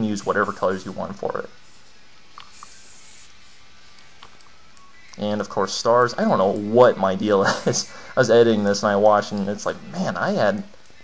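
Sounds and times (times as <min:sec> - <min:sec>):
faint steady hiss: 0:00.0 - 0:11.0
aerosol spray burst: 0:00.2 - 0:00.9, 0:02.5 - 0:03.4.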